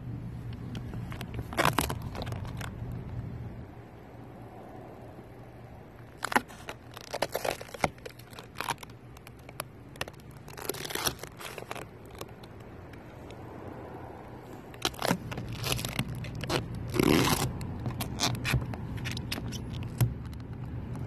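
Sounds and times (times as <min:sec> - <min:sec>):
film crackling as peeled off: 0:01.1 - 0:02.7, 0:06.1 - 0:12.6, 0:14.7 - 0:20.0.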